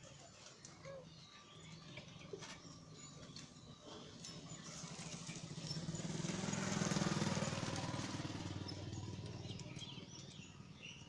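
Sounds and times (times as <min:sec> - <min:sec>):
vehicle engine passing by: 0:04.0 - 0:11.0.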